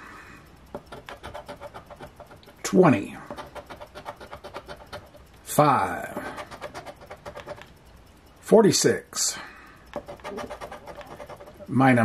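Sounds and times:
scratching lottery ticket: 0.8s - 7.7s, 9.9s - 12.0s.

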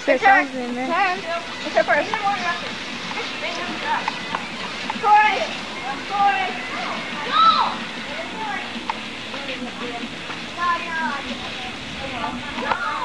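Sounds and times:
children chattering and calling out: 0.0s - 13.0s
steady background hiss: 0.0s - 13.0s.

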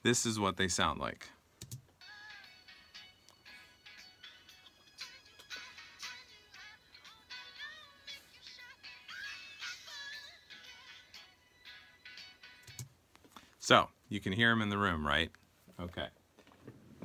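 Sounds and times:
faint vocal music from headphones: 2.0s - 13.4s.

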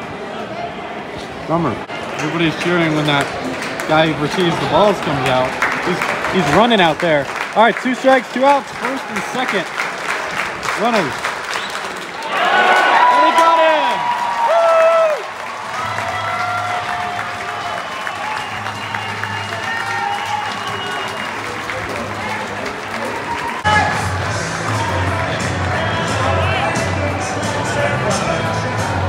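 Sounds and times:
crowd noise: 0.0s - 29.0s
music over loudspeakers: 23.7s - 29.0s.

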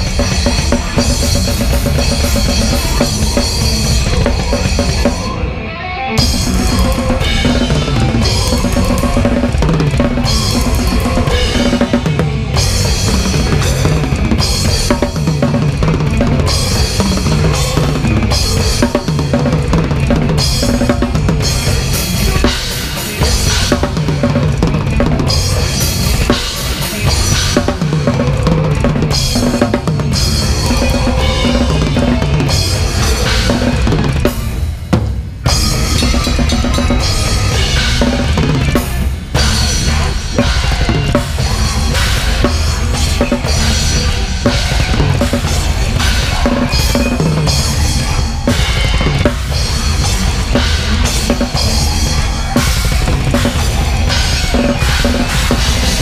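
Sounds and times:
bass drum: 0.0s - 5.3s, 6.2s - 26.4s, 35.5s - 56.0s
electric guitars and bass: 0.0s - 56.0s
cymbals: 6.2s - 56.0s.

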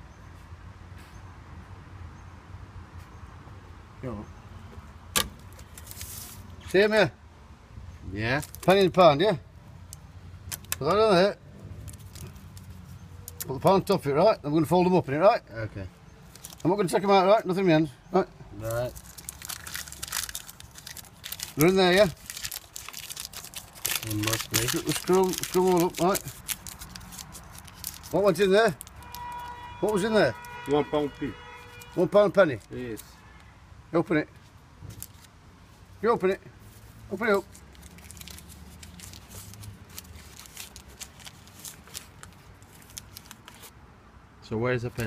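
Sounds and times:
paper crinkling: 5.4s - 6.5s, 8.4s - 9.0s, 11.8s - 13.5s, 16.2s - 16.8s, 18.6s - 30.8s, 31.6s - 33.1s, 34.8s - 35.3s, 36.6s - 43.8s.

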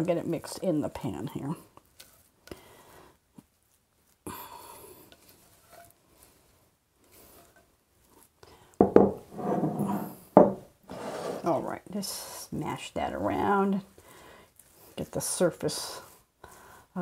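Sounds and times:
spatula scraping in skillet: 1.4s - 3.1s, 4.8s - 8.4s, 10.9s - 11.6s
batter scraped from glass bowl: 10.9s - 11.6s.

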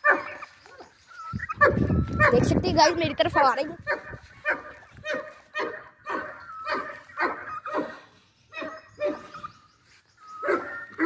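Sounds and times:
dog barking: 0.0s - 0.4s, 3.4s - 8.0s, 10.4s - 10.8s.

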